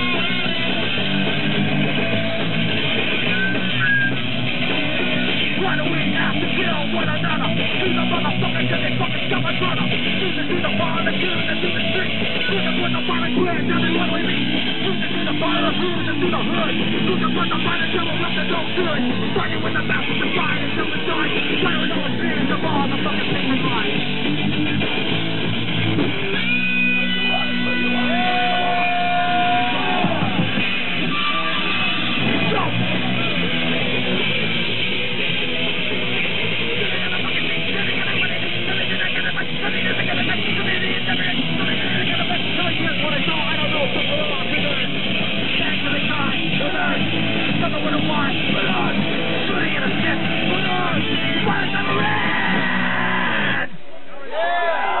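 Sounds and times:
punk rock band playing live: 0:00.0 - 0:53.9.

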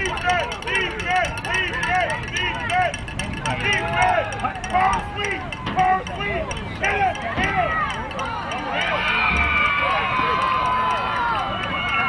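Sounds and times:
crowd shouting and cheering: 0:00.0 - 0:12.0.

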